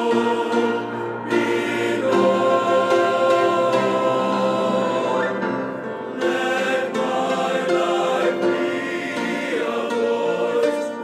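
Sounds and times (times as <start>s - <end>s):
male vocal ensemble singing: 0.0s - 11.0s.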